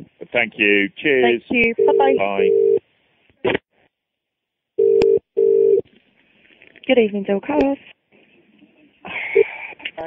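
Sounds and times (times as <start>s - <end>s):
telephone ringing tone: 1.8s - 2.8s, 4.8s - 5.8s.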